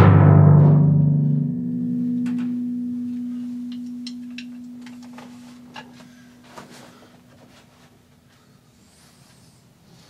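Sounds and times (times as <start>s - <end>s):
timpani ringing: 0.0s - 6.5s.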